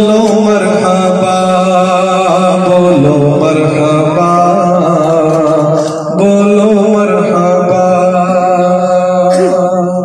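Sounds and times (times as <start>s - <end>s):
man singing into a microphone: 0.0s - 10.0s.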